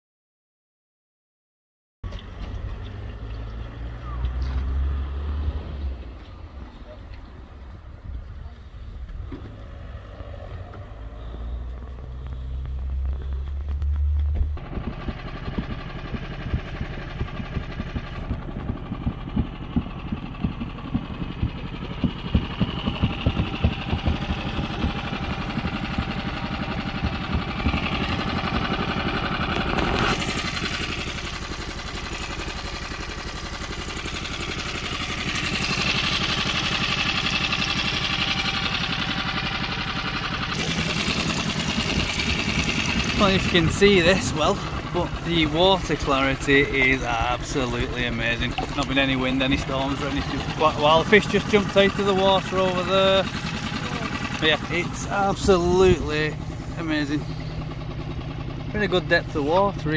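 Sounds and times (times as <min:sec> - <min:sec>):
boat engine running: 0:08.4 - 0:59.9.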